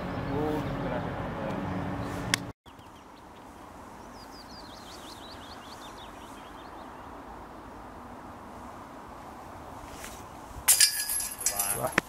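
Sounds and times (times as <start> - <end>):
metal chains crashing and jingling: 10.7 - 11.9.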